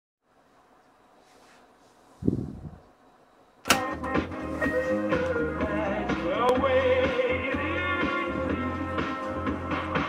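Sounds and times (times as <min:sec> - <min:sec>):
music from tape: 0:03.7 - 0:10.0.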